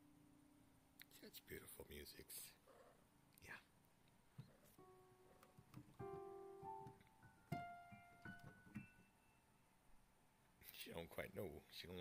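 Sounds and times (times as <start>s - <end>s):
scattered digital piano notes: 4.8s - 9.5s.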